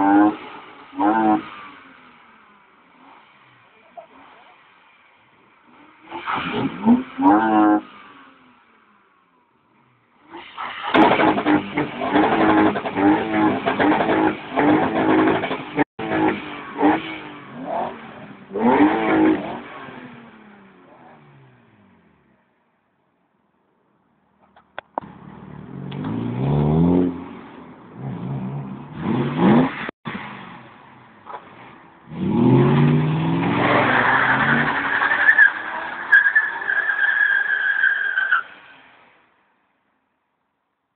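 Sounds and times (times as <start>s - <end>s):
car engines revving: 0.0s - 22.4s, 24.5s - 38.9s.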